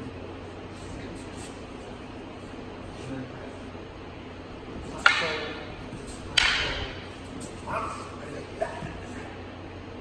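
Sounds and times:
wooden staffs clacking: 0:04.6 - 0:09.4.

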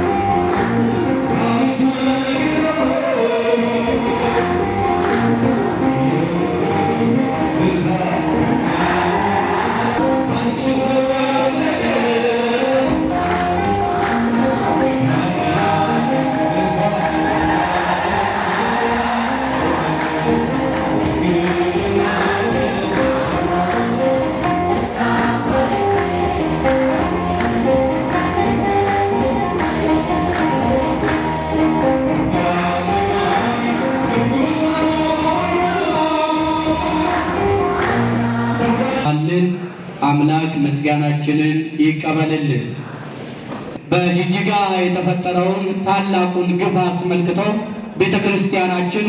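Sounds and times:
rhythmic hand-clapping: 0:00.0 - 0:03.0, 0:03.6 - 0:07.2, 0:07.8 - 0:39.1
crowd singing along: 0:00.0 - 0:40.0
man singing into microphone: 0:01.2 - 0:04.5, 0:05.6 - 0:13.2, 0:14.7 - 0:19.2, 0:21.0 - 0:23.6, 0:32.2 - 0:37.4, 0:38.5 - 0:39.6.

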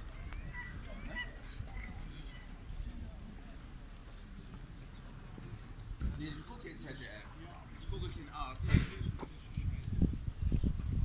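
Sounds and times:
wind rumble on microphone: 0:00.0 - 0:03.8, 0:04.6 - 0:06.6, 0:07.8 - 0:11.0.

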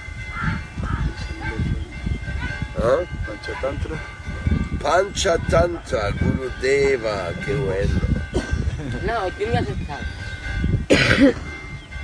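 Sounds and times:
person coughing: 0:08.3 - 0:08.9, 0:10.9 - 0:11.5.

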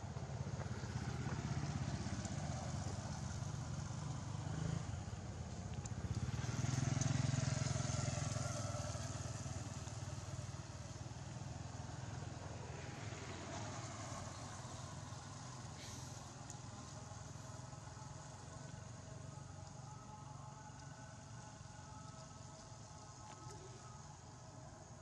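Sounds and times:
vehicle engine running: 0:00.0 - 0:25.0.

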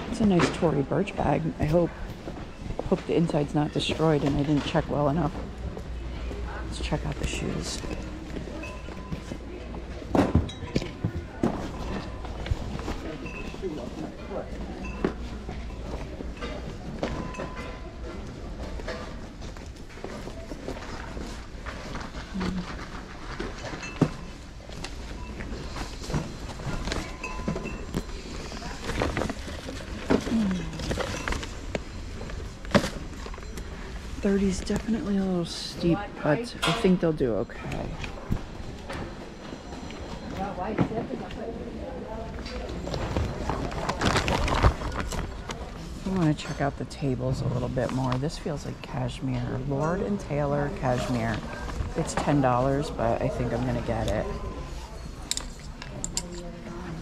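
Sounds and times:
handling noises: 0:00.0 - 0:41.6, 0:42.2 - 0:48.2
background chatter: 0:00.0 - 0:57.0.

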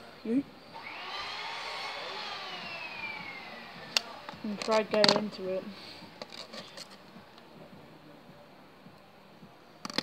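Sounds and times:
hands handling a marker: 0:06.2 - 0:07.0.

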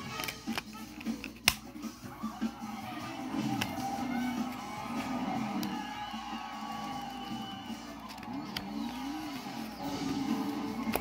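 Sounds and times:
film soundtrack music on television: 0:00.0 - 0:11.0
crowd sounds: 0:01.9 - 0:11.0.

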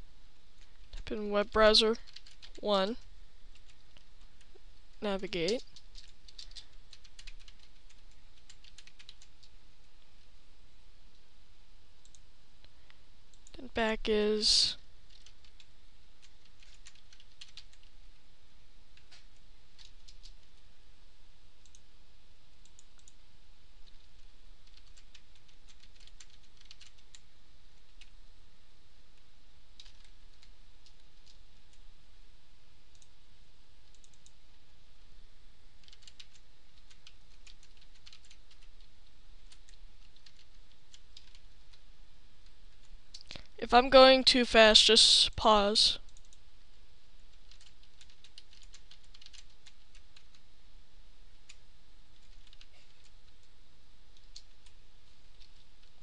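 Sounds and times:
microphone hiss and hum: 0:00.0 - 0:56.0
computer mouse clicks: 0:02.1 - 0:02.6, 0:03.5 - 0:04.6, 0:05.4 - 0:09.6, 0:12.0 - 0:12.2, 0:13.3 - 0:13.6, 0:15.1 - 0:17.9, 0:18.9 - 0:20.6, 0:21.6 - 0:21.8, 0:22.6 - 0:23.2, 0:23.8 - 0:27.2, 0:27.8 - 0:28.1, 0:29.8 - 0:31.8, 0:32.9 - 0:33.2, 0:33.8 - 0:34.4, 0:35.8 - 0:41.8, 0:46.1 - 0:46.4, 0:47.3 - 0:50.4, 0:51.3 - 0:53.5, 0:54.2 - 0:55.9.

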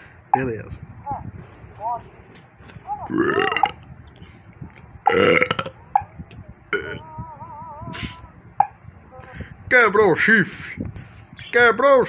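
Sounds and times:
rough cartoon vocal noises: 0:03.0 - 0:03.8, 0:05.1 - 0:05.8, 0:06.7 - 0:07.1.

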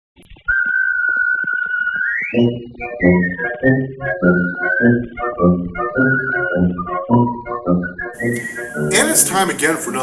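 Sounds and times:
whistled note: 0:00.4 - 0:09.7.

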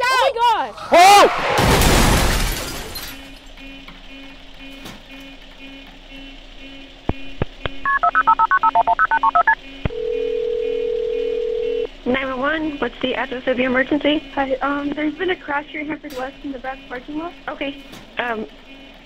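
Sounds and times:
car crash: 0:00.7 - 0:03.7
keypad touch tones: 0:07.1 - 0:11.9
phone ringback tone: 0:07.9 - 0:11.9.

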